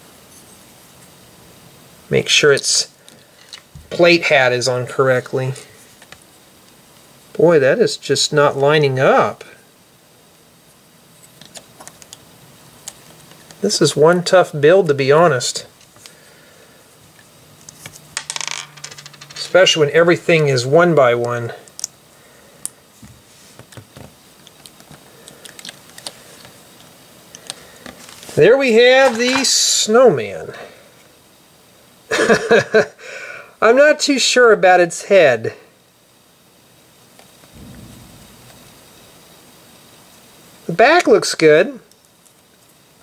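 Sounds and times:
steady background hiss: 0.0 - 43.0.

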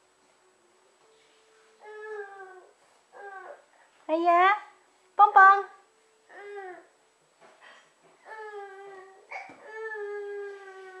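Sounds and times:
toddler whining: 1.8 - 3.7, 8.2 - 11.0.

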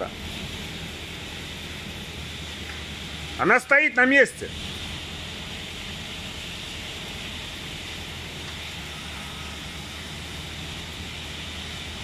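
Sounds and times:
forklift engine running: 0.0 - 12.0
steady hiss: 0.0 - 12.0.

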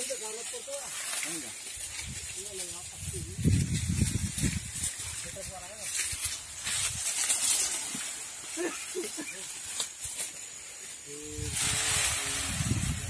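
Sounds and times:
dry sugarcane leaves rustling: 0.0 - 13.0.

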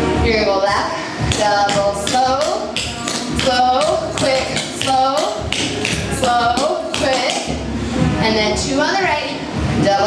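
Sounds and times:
tap shoes on hard floor: 4.2 - 6.4.

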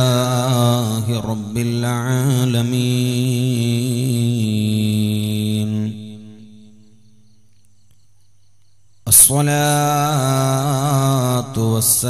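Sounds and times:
man chanting over loudspeakers: 0.0 - 6.6, 9.1 - 12.0.

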